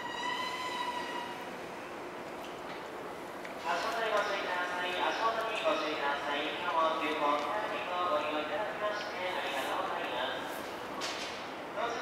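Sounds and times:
voice over public-address loudspeakers: 0:03.6 - 0:10.6, 0:11.8 - 0:12.0.

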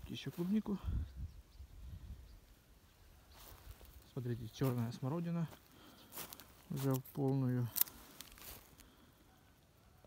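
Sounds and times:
footsteps on soil and leaves: 0:00.0 - 0:00.8, 0:03.2 - 0:09.0
leaves rustling: 0:00.0 - 0:00.9, 0:01.6 - 0:09.3.

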